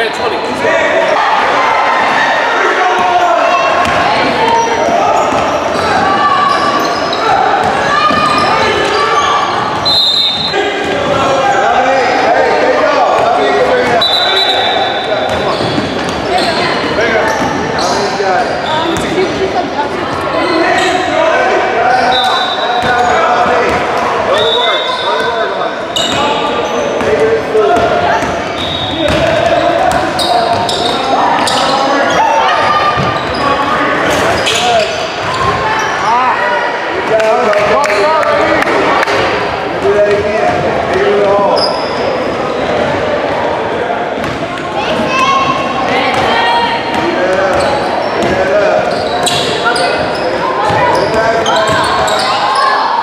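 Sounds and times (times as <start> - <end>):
people calling and chattering: 0.0 - 53.0
shoes squeaking on floor: 3.0 - 11.8, 13.8 - 21.2, 24.3 - 36.1, 41.5 - 42.4, 44.2 - 53.0
basketball dribbling: 15.3 - 17.6, 27.8 - 31.6.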